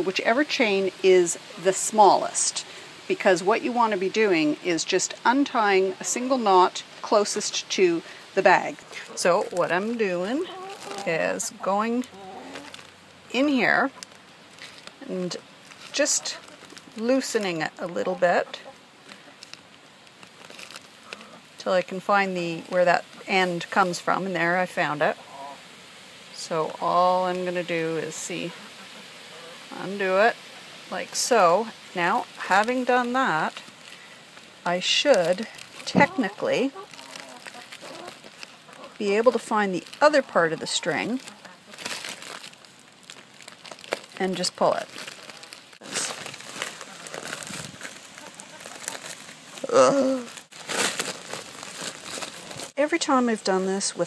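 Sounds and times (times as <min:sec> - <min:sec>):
plastic bag crinkling: 0:07.2 - 0:18.4, 0:19.0 - 0:21.8, 0:31.2 - 0:52.8.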